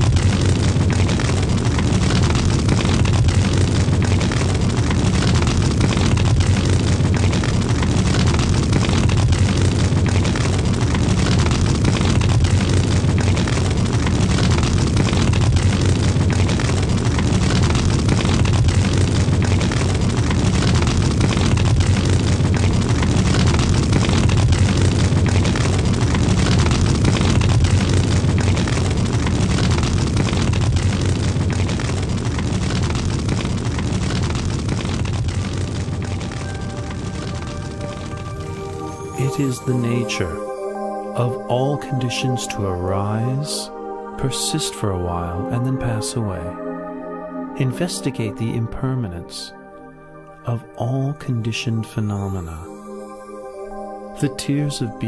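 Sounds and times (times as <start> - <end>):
large fire roaring and crackling: 0.0 - 41.4.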